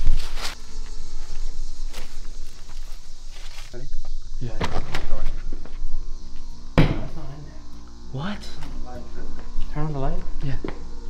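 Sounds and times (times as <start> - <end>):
low music drone: 5.8 - 11.0
loud thump: 6.8 - 7.3.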